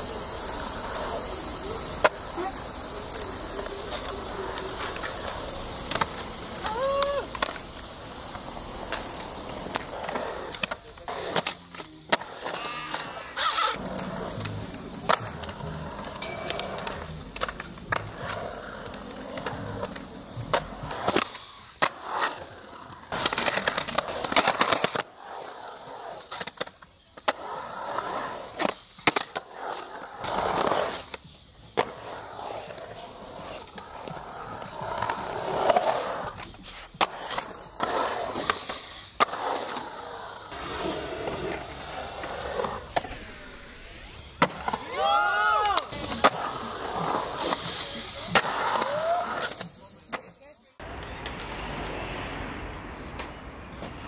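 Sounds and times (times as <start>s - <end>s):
skateboard clacks: 0.0s - 43.2s, 44.4s - 54.0s
skateboard scraping concrete: 0.0s - 54.0s
skateboard wheels rolling on concrete: 0.0s - 54.0s.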